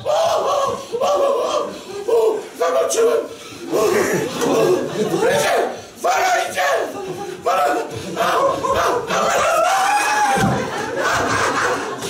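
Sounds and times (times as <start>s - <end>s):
men shouting wordless cries: 0.0s - 12.0s.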